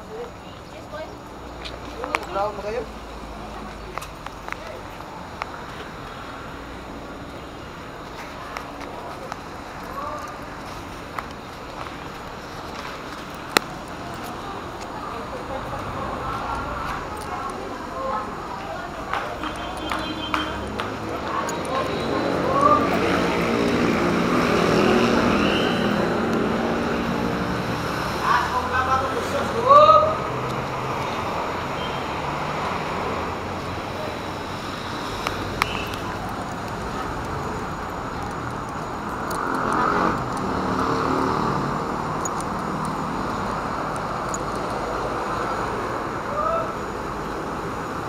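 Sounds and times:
engine humming: 0.0 - 48.0
street noise: 0.0 - 48.0.

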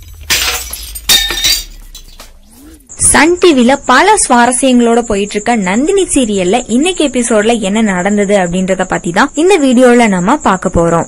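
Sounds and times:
glass shattering: 0.0 - 2.5.

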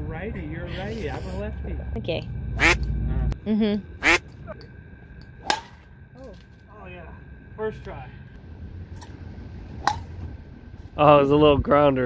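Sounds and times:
low background rumble: 0.0 - 12.0
golf club striking ball: 9.8 - 10.2.

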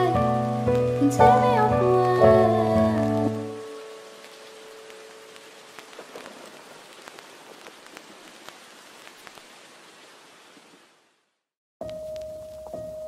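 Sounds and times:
raindrops ticking: 0.0 - 11.0, 11.8 - 13.0
steady falling rain: 0.0 - 13.0.

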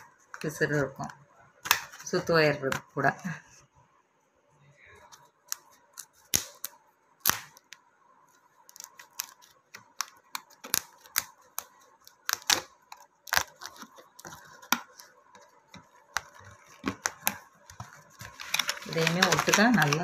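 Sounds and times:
plastic strips clicking and crackling: 8.6 - 20.0.

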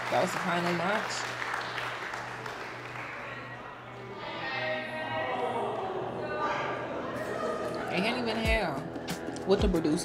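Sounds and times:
small group clapping: 0.0 - 3.6
background music with sustained tones: 1.3 - 10.0.

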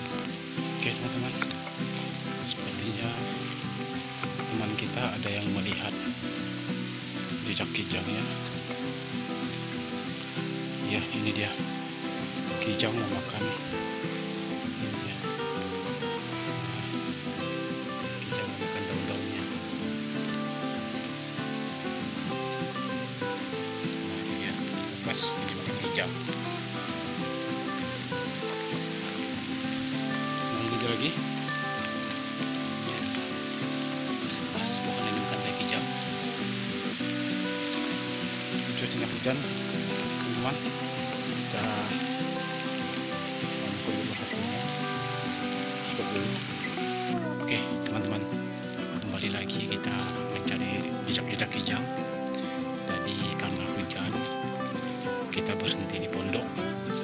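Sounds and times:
background music: 0.0 - 57.0
steady hiss: 0.0 - 57.0.

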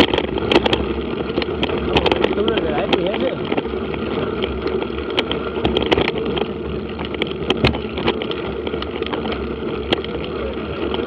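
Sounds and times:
bike clicks and rattles: 0.0 - 11.0
tyres on dirt: 0.0 - 11.0.

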